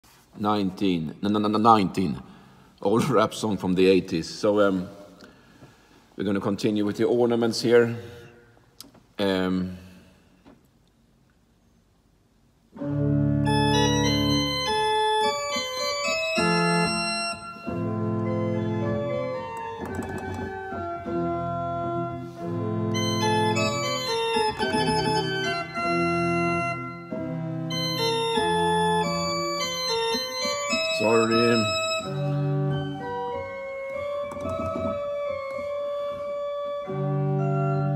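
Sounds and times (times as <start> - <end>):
organ playing: 12.8 - 37.9.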